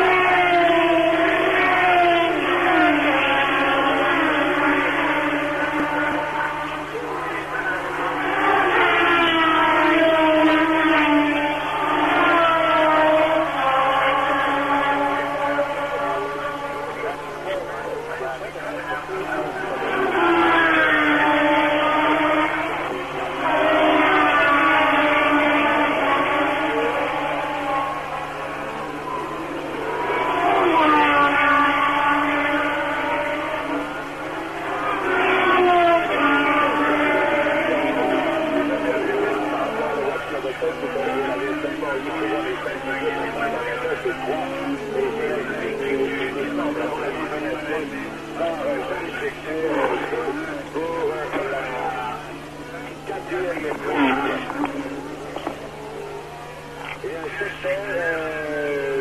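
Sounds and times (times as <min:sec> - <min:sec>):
racing cars passing at speed: 0:00.0 - 0:59.0.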